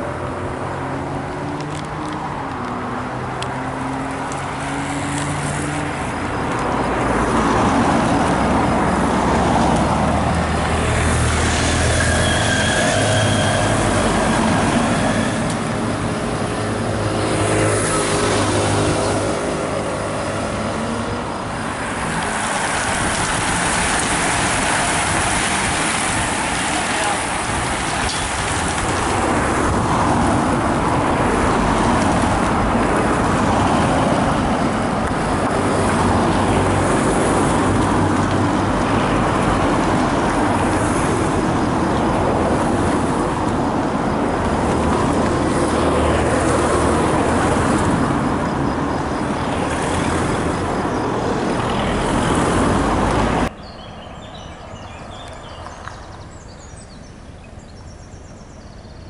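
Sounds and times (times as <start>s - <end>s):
vehicles driving past: 0.0s - 59.0s.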